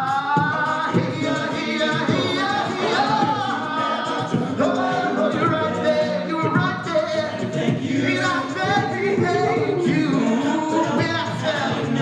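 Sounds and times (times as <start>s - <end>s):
men singing a cappella: 0.0s - 12.0s
vocal percussion beat: 0.0s - 12.0s.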